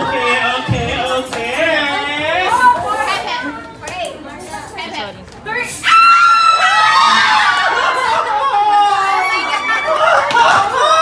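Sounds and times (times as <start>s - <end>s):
excited voices talking and laughing: 5.5s - 11.0s.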